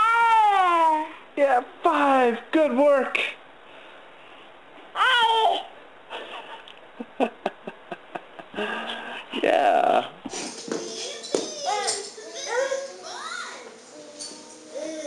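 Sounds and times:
baby squealing and babbling: 5.0 - 5.7
small child's gliding vocal sounds: 10.8 - 15.0.

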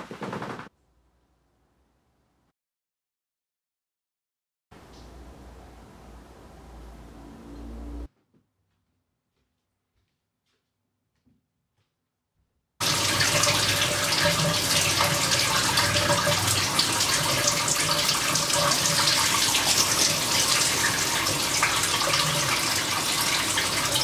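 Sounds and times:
shower spray on person: 12.8 - 24.0.

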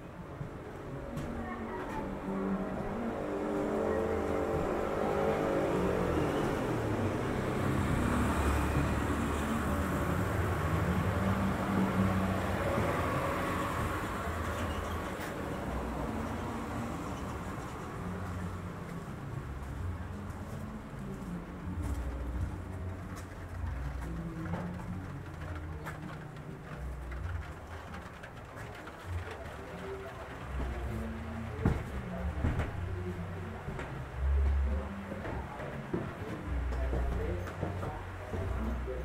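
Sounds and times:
vehicle engine rumbling: 0.0 - 39.0.

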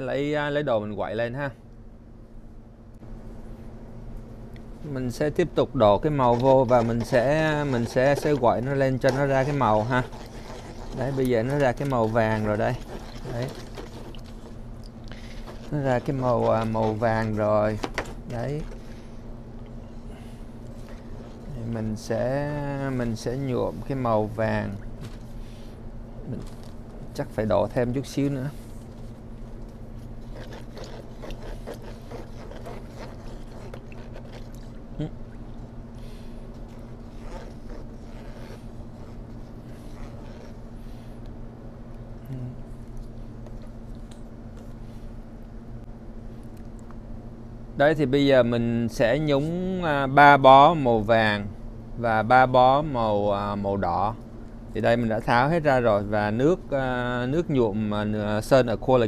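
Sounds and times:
steady low hum: 0.0 - 59.0
stirrer scraping plastic tub: 5.1 - 19.0, 20.6 - 24.4, 30.0 - 34.8, 36.4 - 40.6
stick swishing through water: 6.2 - 18.8, 30.2 - 34.8.

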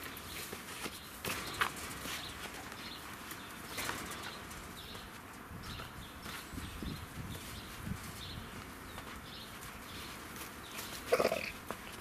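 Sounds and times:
cub scuffling on dirt: 0.0 - 12.0.

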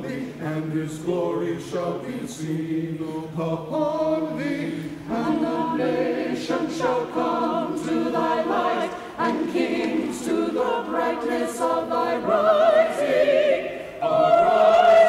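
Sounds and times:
church choir singing: 0.0 - 15.0.

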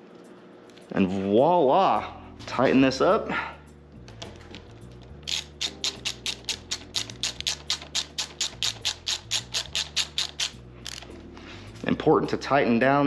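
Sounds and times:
hand ratchet clicking: 5.2 - 11.1.

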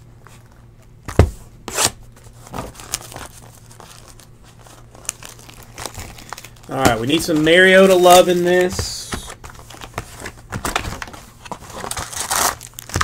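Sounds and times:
packaging crinkling and tearing: 2.5 - 13.0.

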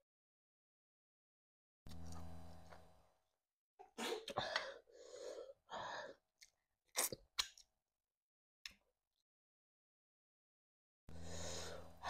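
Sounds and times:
low hum: 1.9 - 3.1, 11.1 - 12.0.

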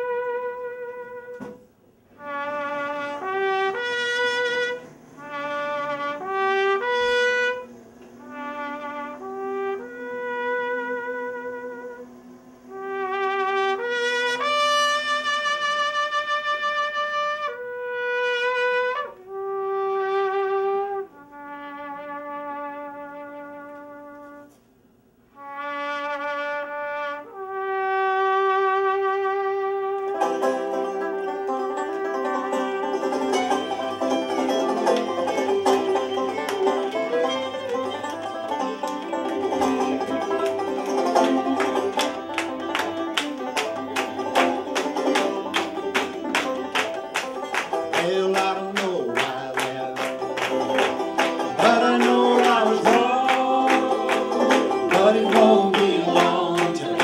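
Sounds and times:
slow trumpet solo: 0.0 - 48.6
string band with banjo and fiddle: 29.9 - 57.0.

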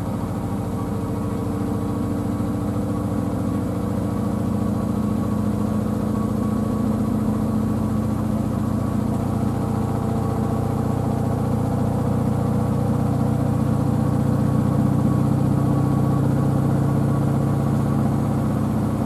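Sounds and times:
washing machine spinning: 0.0 - 19.0.

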